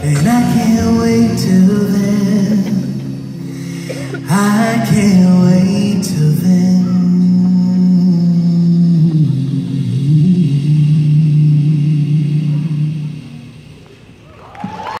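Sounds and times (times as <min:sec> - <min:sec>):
vocal group holding chord: 0:00.0 - 0:13.8
low bass voice: 0:00.0 - 0:13.9
audience cheering: 0:14.2 - 0:15.0.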